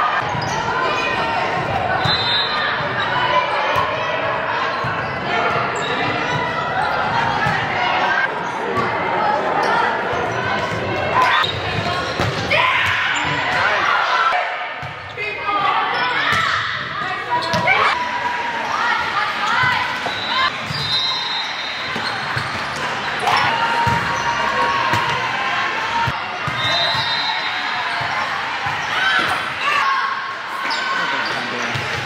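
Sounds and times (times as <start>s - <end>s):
spectators shouting and talking: 0.0s - 32.0s.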